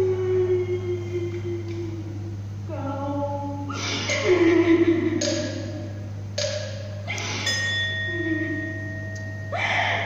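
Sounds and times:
steady low hum: 0.0 - 10.0
bell-like metal tone: 7.4 - 10.0.

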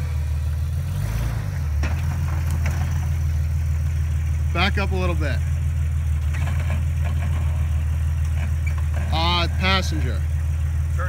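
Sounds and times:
engine low rumble: 0.0 - 11.0.

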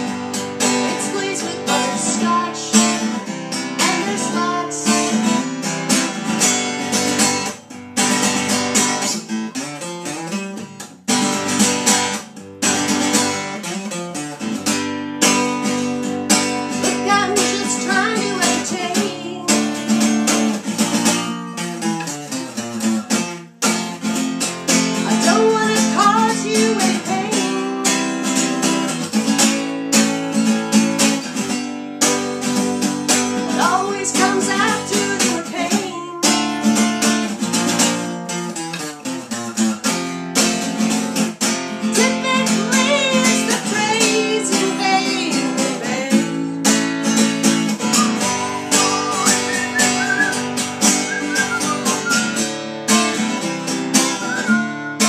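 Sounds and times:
acoustic guitar strumming: 0.0 - 55.0
woman singing: 0.7 - 5.5, 16.8 - 20.2, 25.0 - 28.4, 33.5 - 36.7, 41.8 - 46.7.

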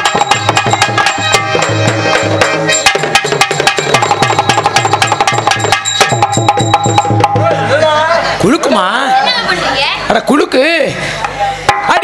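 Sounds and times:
fast hand drum strokes: 0.0 - 7.9.

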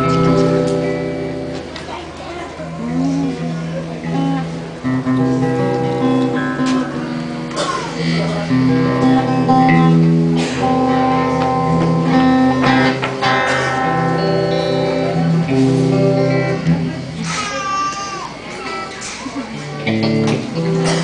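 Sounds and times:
acoustic guitar strumming: 0.0 - 1.8, 2.6 - 17.4, 19.8 - 21.0.

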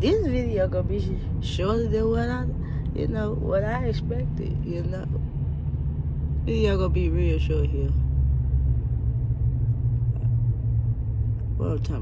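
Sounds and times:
road and engine rumble: 0.0 - 12.0.

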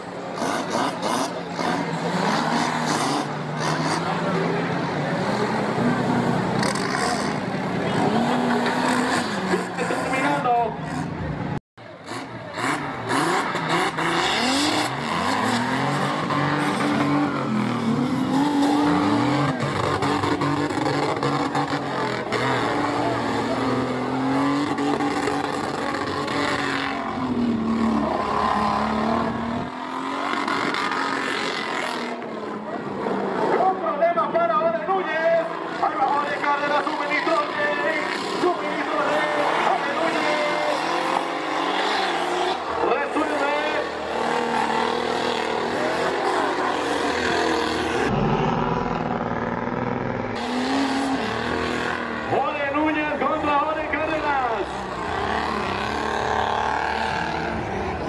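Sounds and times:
off-road engine revving: 0.0 - 58.0
spectators' voices: 0.0 - 58.0.

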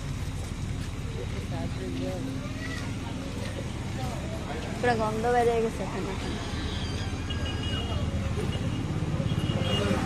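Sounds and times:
people talking: 1.0 - 6.5.

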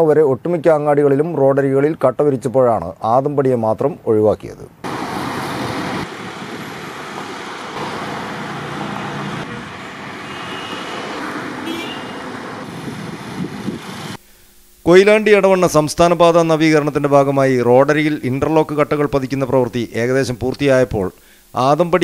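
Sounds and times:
road traffic rushing: 4.8 - 14.2.

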